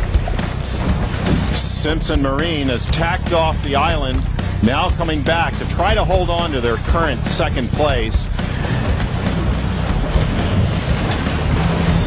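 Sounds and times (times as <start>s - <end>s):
background music with strong bass: 0.0s - 12.0s.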